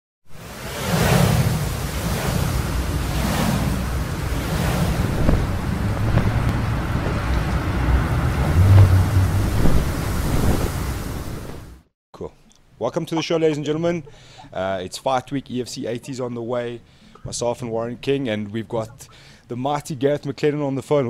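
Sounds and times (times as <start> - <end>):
low rumble: 0.3 - 11.7
rushing wind: 0.3 - 11.8.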